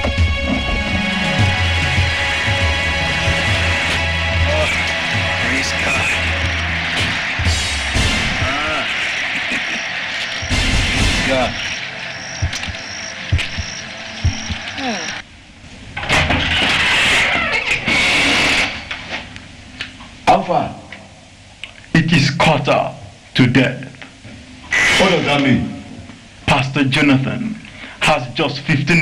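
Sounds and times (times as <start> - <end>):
background music: 0.0 - 15.2
indistinct voices: 0.5 - 15.2.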